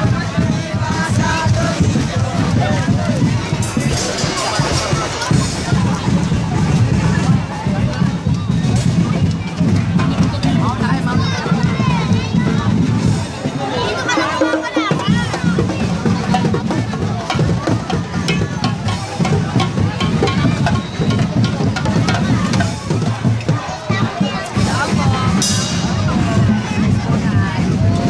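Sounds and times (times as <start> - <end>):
crowd talking and calling out: 0.0 - 28.0
drum-led music: 0.0 - 28.0.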